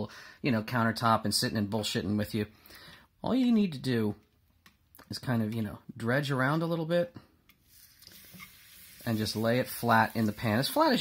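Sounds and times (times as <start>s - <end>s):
meat sizzling in a frying pan: 7.6s - 11.0s.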